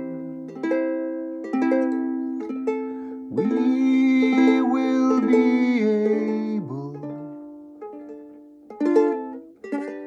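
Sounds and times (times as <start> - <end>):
plucked acoustic string chords: 0.0 - 10.0.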